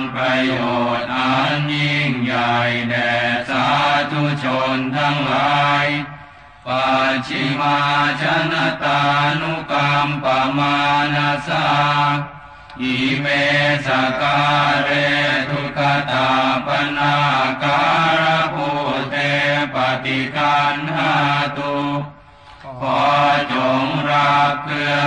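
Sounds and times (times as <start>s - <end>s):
monotone chanting: 0.0s - 25.0s.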